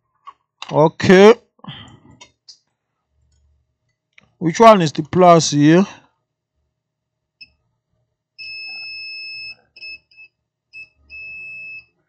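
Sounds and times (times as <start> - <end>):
multimeter continuity beeps: 8.4 - 11.9.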